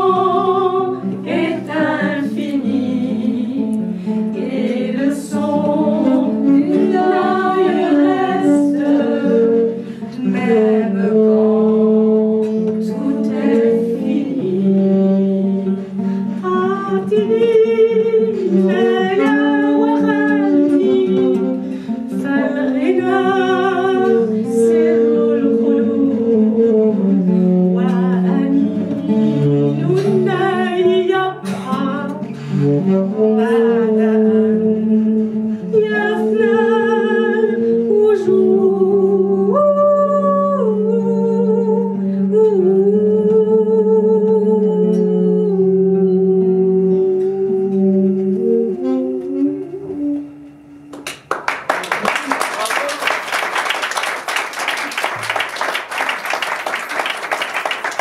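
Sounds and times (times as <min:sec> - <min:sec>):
women singing: 0:00.0 - 0:15.8, 0:16.4 - 0:27.1, 0:27.7 - 0:32.3, 0:33.2 - 0:50.3.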